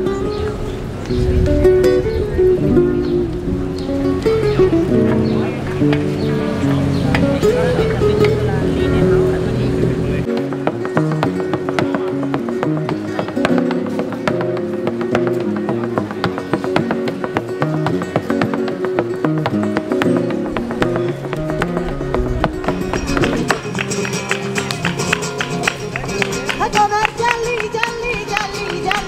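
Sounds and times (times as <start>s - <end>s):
flamenco acoustic guitar: 0.0s - 29.0s.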